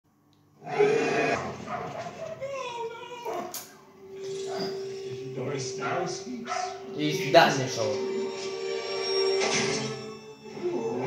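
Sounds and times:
cartoon dinosaur roaring: 0.6 - 1.6.

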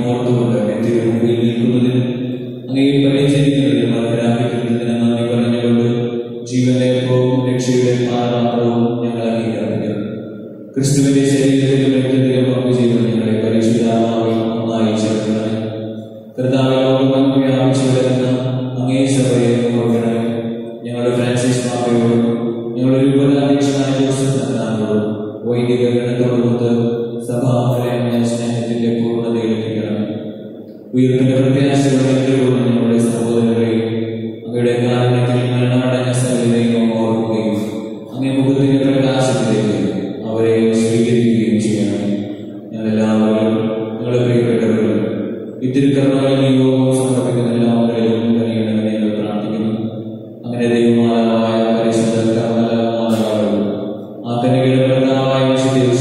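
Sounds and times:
man chanting a prayer: 0.0 - 15.8, 16.4 - 56.0.

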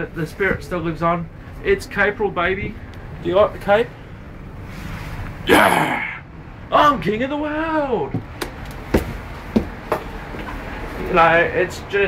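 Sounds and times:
low steady rumble: 0.0 - 12.0
sharp knocks and taps: 8.1 - 10.6.

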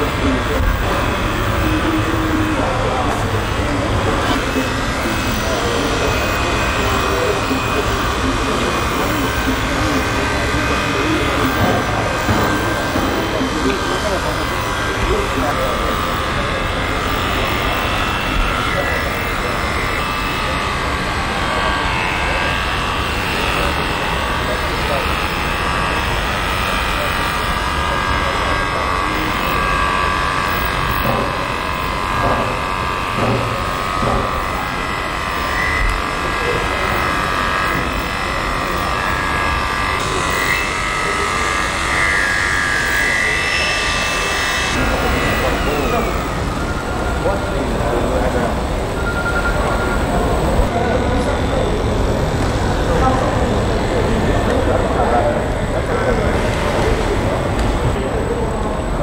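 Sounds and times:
electric clippers buzzing: 0.0 - 50.7
din of voices: 0.0 - 59.0.

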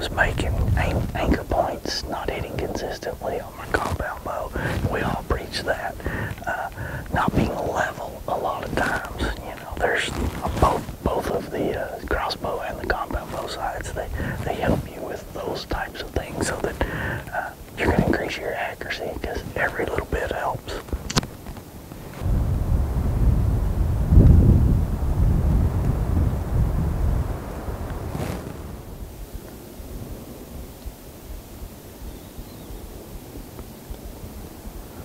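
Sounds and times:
whispered talking: 0.0 - 20.9
wind buffeting microphone: 0.0 - 35.0.

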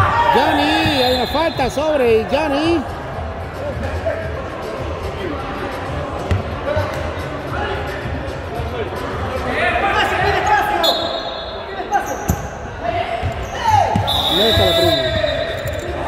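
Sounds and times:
players calling out: 0.0 - 2.4, 13.2 - 16.0.

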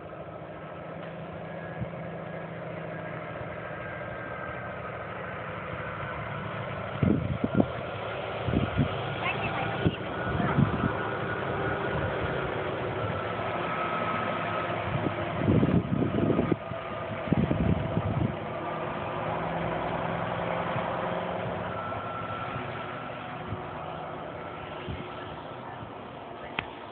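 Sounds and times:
engine running with faint whine: 0.0 - 26.9
low rumbling bursts: 0.0 - 26.9.

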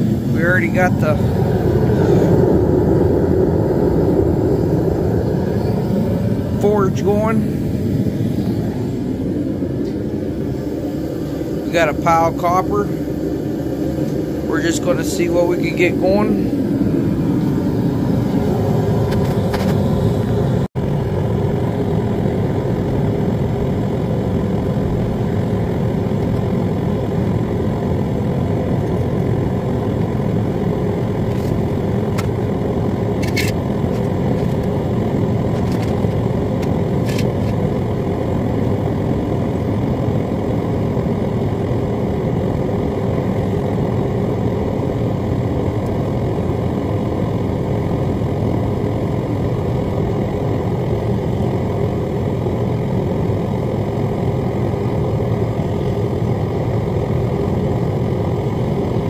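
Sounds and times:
gas burner rushing: 0.0 - 59.0.

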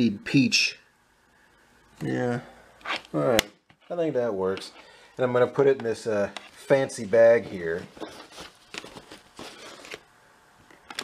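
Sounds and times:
faint rustling and scraping: 5.6 - 10.0.

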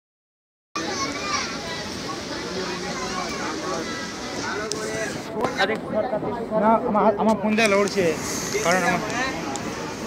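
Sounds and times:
children chattering: 0.8 - 10.0
steady background noise: 0.8 - 10.0.

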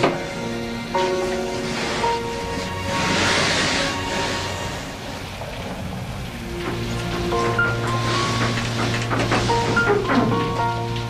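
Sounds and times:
dramatic music with held notes: 0.0 - 11.0
hissing noise: 0.0 - 11.0.

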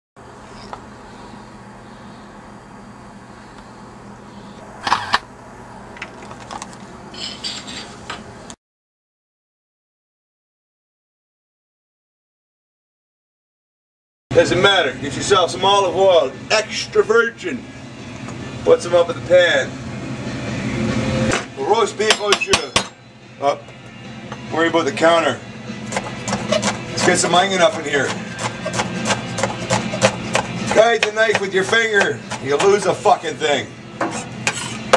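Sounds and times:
steady low hum: 0.2 - 8.6, 14.3 - 34.9
knife slicing onion: 25.9 - 33.1.

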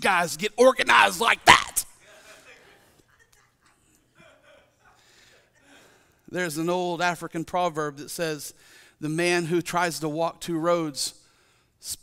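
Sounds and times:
man breathing softly: 8.6 - 9.0.

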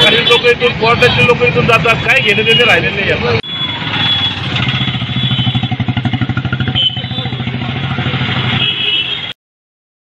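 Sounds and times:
motorcycle engine idling: 4.3 - 8.4.

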